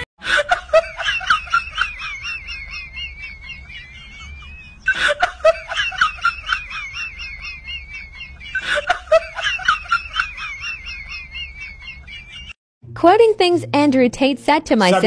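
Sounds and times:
high-pitched laughter: 0:00.2 - 0:12.6.

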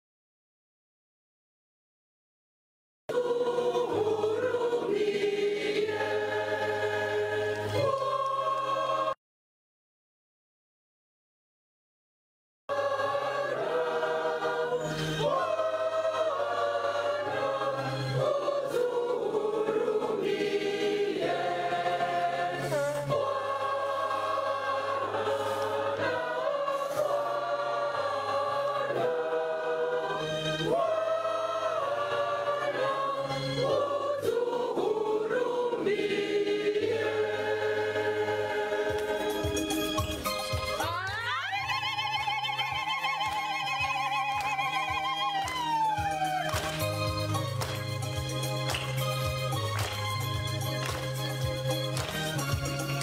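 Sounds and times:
choir singing a hymn: 0:03.1 - 0:09.2, 0:12.7 - 0:40.3.

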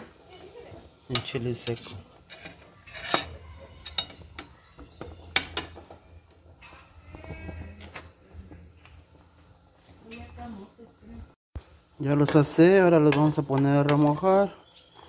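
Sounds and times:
metal spoon knocking on pots: 0:01.1 - 0:07.9.

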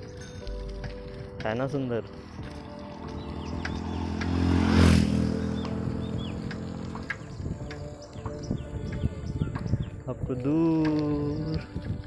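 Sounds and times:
birds chirping: 0:00.0 - 0:11.8
motorcycle passing by: 0:02.5 - 0:07.7.

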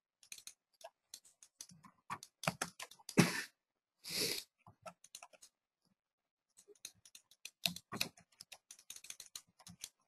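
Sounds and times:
computer keyboard typing: 0:00.2 - 0:03.2, 0:04.7 - 0:05.6, 0:06.5 - 0:10.0.

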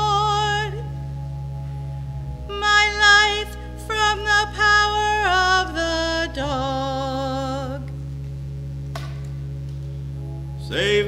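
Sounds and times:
organ sustained chord: 0:00.0 - 0:11.0.

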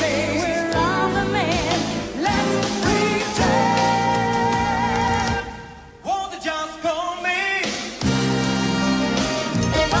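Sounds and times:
band playing: 0:00.0 - 0:05.5, 0:07.6 - 0:10.0
man and woman singing duet: 0:00.0 - 0:07.8, 0:09.6 - 0:10.0.

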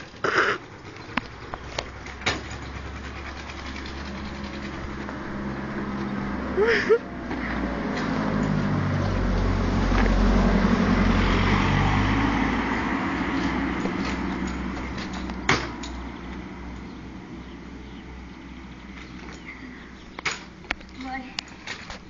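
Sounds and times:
car driving past: 0:03.8 - 0:14.7.

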